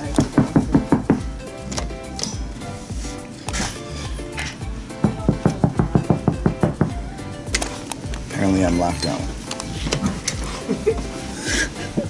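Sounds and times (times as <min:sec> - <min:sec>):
fist knocking on door: 0:00.2 - 0:01.4, 0:05.0 - 0:07.1.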